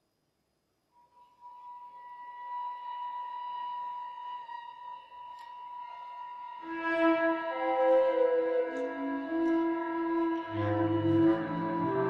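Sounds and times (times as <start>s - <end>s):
instrument holding high pure note: 1.2s - 12.0s.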